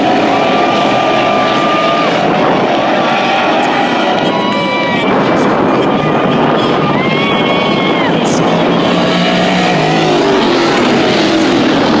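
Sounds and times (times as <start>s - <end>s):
race car engines at full throttle: 0.0s - 12.0s.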